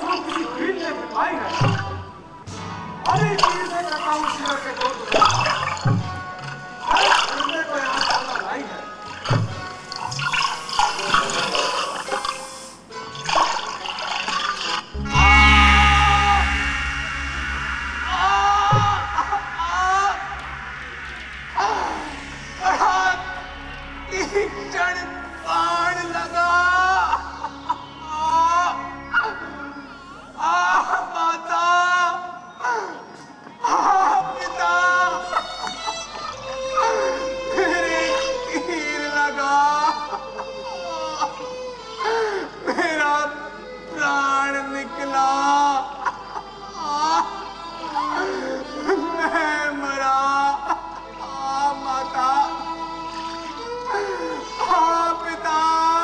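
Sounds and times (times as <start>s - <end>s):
music: 0.0s - 56.0s
water pouring and gurgling: 9.2s - 12.5s, 13.2s - 14.9s.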